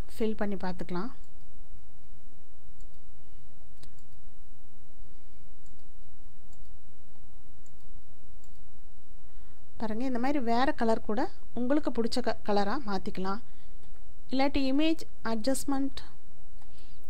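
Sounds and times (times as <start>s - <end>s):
low electrical hum: 0.0s - 17.0s
computer mouse clicks: 2.8s - 3.1s, 3.8s - 4.2s, 5.6s - 6.8s, 7.6s - 8.7s.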